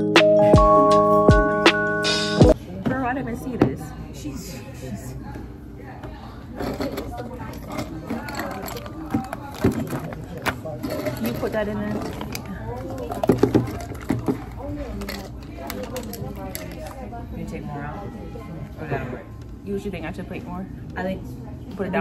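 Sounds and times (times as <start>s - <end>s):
ice clinking in glass: 6.6s - 17.0s.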